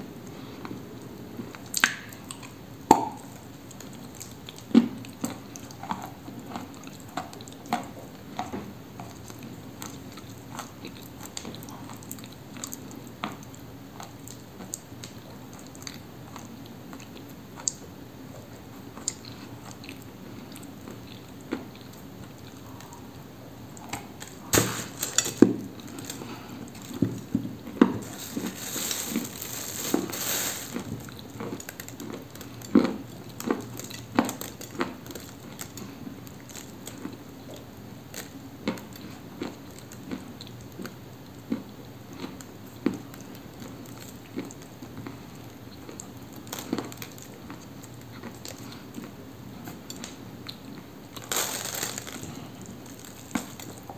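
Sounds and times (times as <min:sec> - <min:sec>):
crunchy biting and chewing: 0:50.4 - 0:53.9.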